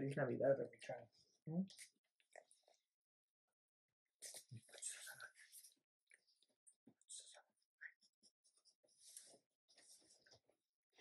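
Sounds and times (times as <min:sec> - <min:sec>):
soft rustling: 0:08.0 - 0:11.0.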